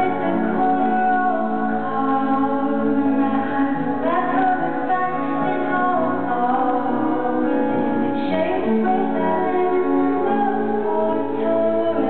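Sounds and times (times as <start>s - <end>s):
guitar: 0.0s - 12.0s
keyboard: 0.0s - 12.0s.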